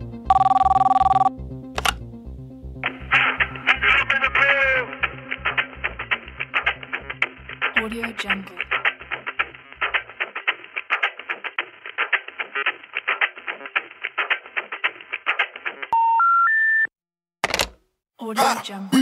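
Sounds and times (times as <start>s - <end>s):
rapid rhythmic telephone line sound: 0.3s - 1.3s, 2.9s - 16.0s
rising telephone beeps: 0.3s - 1.3s, 16.0s - 16.9s
bass beat: 1.4s - 10.1s.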